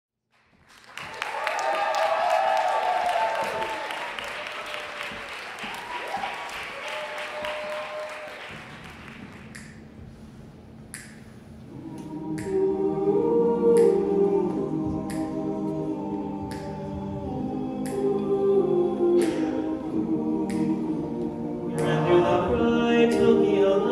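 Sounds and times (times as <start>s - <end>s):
audience applause and cheering: 0.6s - 9.6s
men's a cappella group singing: 11.7s - 23.9s.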